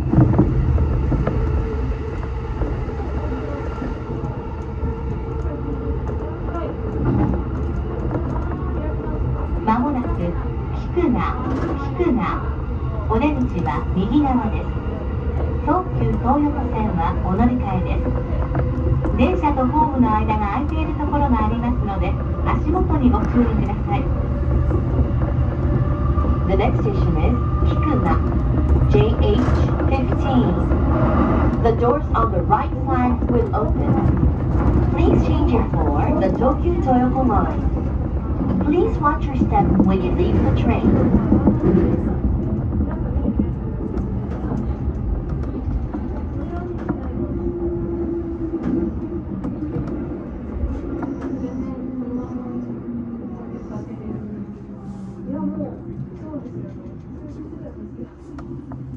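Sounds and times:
train wheels rumbling on rail: 0.0s - 58.9s.

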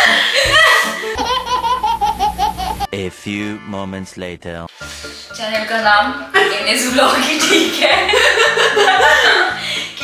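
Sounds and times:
woman laughing hard: 0.0s - 2.9s, 7.4s - 10.0s
baby laughing: 0.3s - 2.9s.

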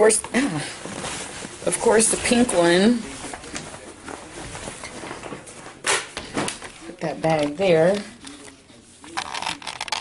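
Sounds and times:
fabric bag rustling: 0.6s - 5.8s.

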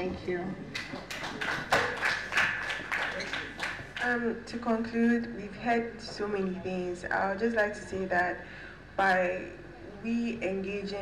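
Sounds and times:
scattered applause: 0.8s - 4.1s.

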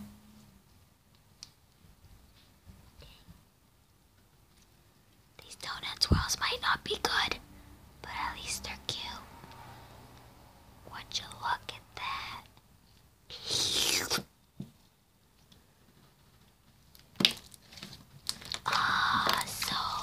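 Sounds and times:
person whispering: 5.4s - 7.4s, 8.0s - 9.4s, 10.9s - 12.6s, 13.3s - 14.3s, 18.7s - 20.0s.

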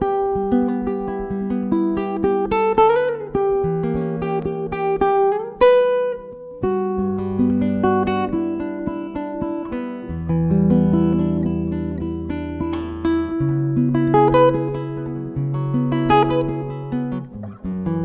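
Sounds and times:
plucked guitar: 0.0s - 18.0s.

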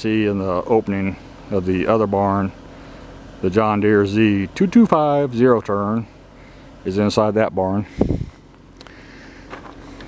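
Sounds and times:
distant low engine rumble: 0.0s - 10.0s
wind buffeting microphone: 7.9s - 8.4s.

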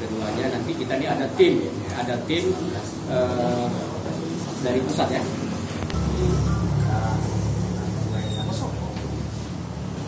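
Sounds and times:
low steady rumble: 5.8s - 10.0s.

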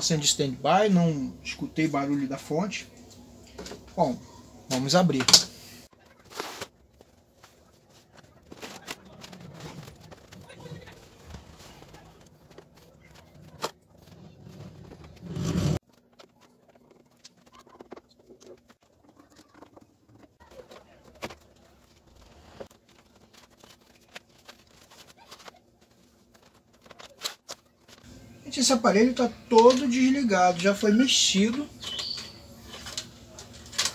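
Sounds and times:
handling noise: 3.1s - 28.4s.

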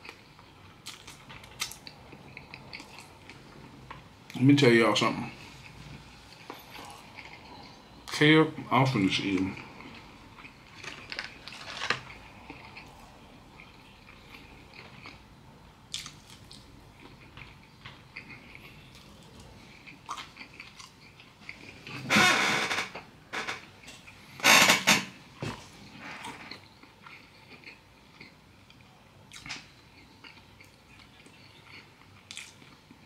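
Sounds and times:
person chewing: 0.0s - 4.0s, 5.3s - 8.2s, 9.3s - 15.3s, 15.9s - 22.0s, 25.6s - 33.0s.

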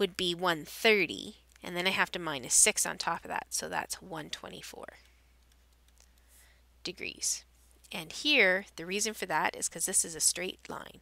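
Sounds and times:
stylus clicking on a tablet: 4.3s - 6.4s.

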